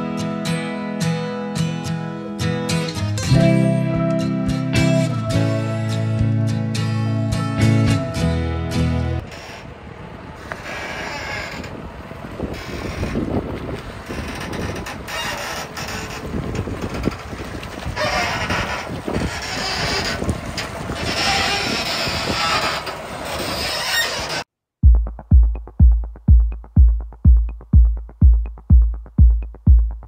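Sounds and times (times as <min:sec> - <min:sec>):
tractor engine rattling rumble: 0:08.8 - 0:24.5.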